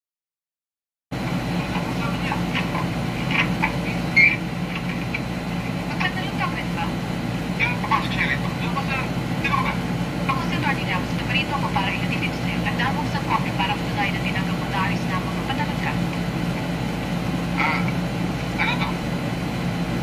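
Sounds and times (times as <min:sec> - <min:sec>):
low hum and hiss: 0:01.2 - 0:20.0
film dialogue voices: 0:01.5 - 0:19.1.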